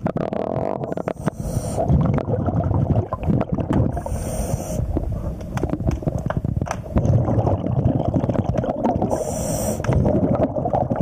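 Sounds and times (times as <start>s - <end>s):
underwater low rumble: 0.0s - 11.0s
small clicks and knocks: 5.4s - 6.9s
hiss: 9.1s - 9.8s.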